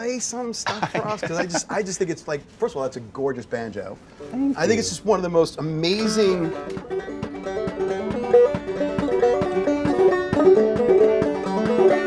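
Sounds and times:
banjo plucked melody: 4.3 - 12.0.

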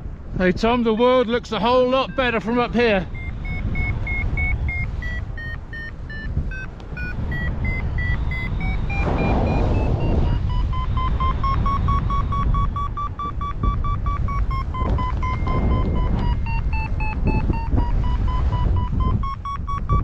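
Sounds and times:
wind rumble on microphone: 0.0 - 20.0
wind gust hiss: 0.1 - 19.2
variometer short beeps: 1.0 - 20.0.

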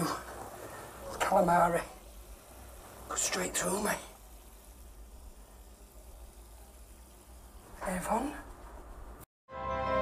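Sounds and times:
faint hiss: 0.0 - 9.3.

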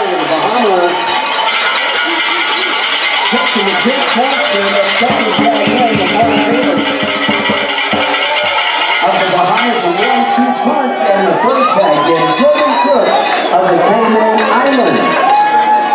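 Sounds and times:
crowd shouting and cheering: 0.0 - 15.9.

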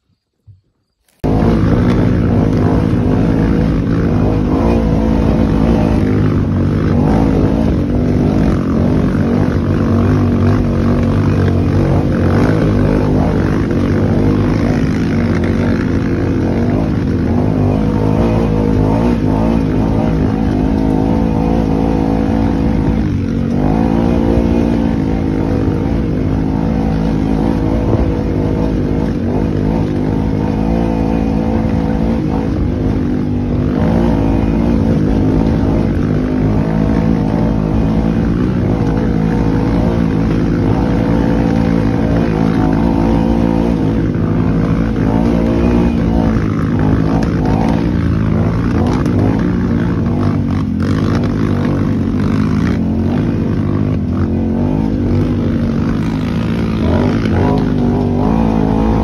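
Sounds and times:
utility vehicle engine running: 0.0 - 59.0.

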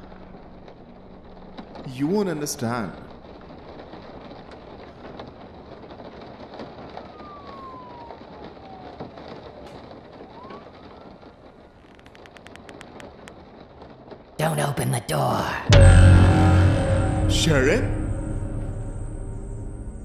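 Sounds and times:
faint siren wailing: 6.7 - 11.6.

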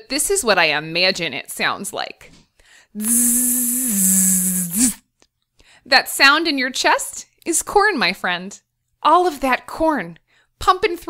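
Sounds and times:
woman humming with hiss: 3.0 - 5.0.

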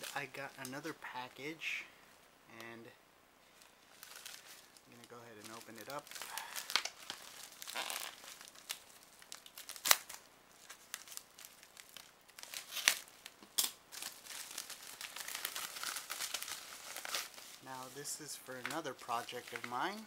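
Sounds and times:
plastic pouch crinkling: 0.0 - 1.5, 3.5 - 20.0
plastic tearing open: 4.0 - 17.9, 18.6 - 20.0.

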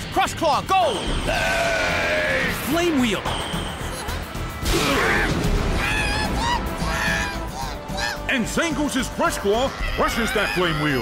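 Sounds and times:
background music: 0.0 - 11.0
high-pitched cartoon creature cries: 4.9 - 8.3, 9.7 - 11.0.

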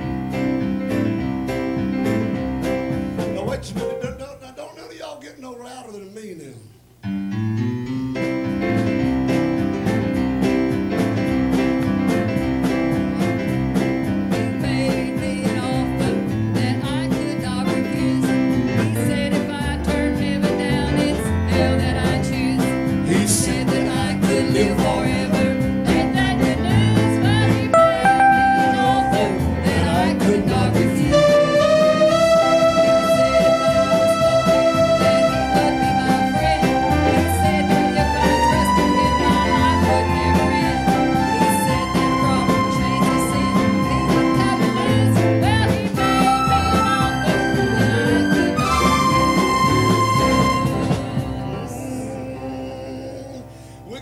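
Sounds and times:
keyboard playing: 0.0 - 4.3, 7.1 - 17.2, 27.6 - 54.0
drums playing steady beat: 0.0 - 4.6, 8.7 - 31.1
woman singing into microphone: 14.5 - 22.8, 23.4 - 31.3, 35.6 - 48.6.

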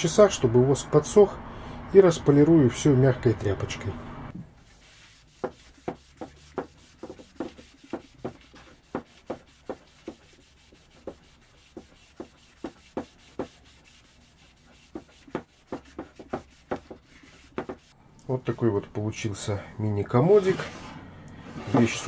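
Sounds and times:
cloth rubbing on wood: 4.6 - 18.0, 20.3 - 22.0.

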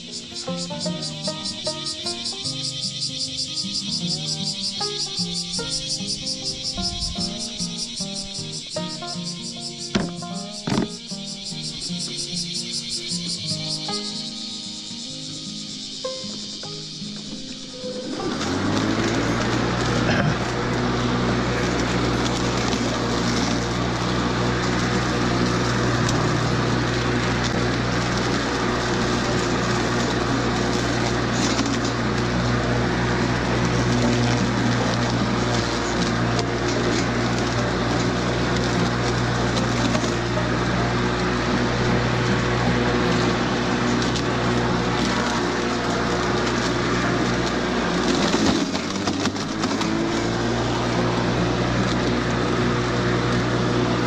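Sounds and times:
grass being cut: 0.0 - 54.0
lawn mower motor hum: 0.0 - 54.0.

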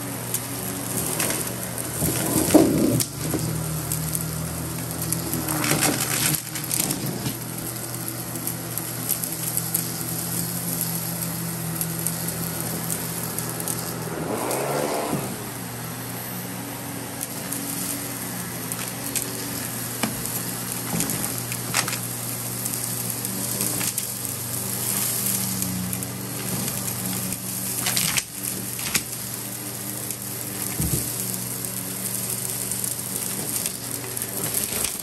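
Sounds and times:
vacuum cleaner running: 0.0 - 35.0
debris rattling up vacuum wand: 0.1 - 16.1, 17.0 - 35.0.

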